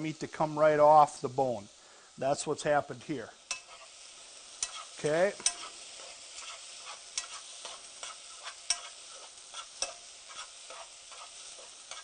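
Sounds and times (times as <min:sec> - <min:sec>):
food sizzling: 0:00.0 - 0:12.0
utensil scraping in a pan: 0:03.0 - 0:12.0.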